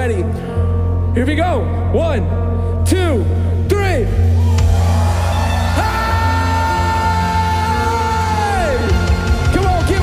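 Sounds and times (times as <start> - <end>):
congregation screaming: 4.4 - 10.0
amplified voice yelling: 5.7 - 8.9.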